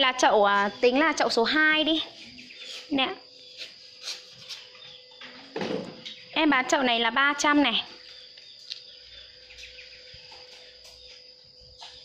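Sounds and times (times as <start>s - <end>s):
high-pitched insect drone: 0.0s - 12.0s
faint bird chirps: 7.8s - 12.0s.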